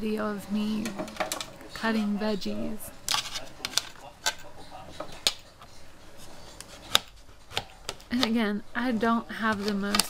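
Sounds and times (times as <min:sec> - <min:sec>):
knife slicing and tapping plate: 0:06.6 - 0:08.4.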